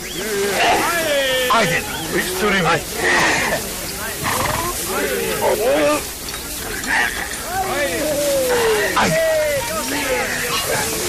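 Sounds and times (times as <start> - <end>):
men shouting and grunting: 6.8 - 11.0.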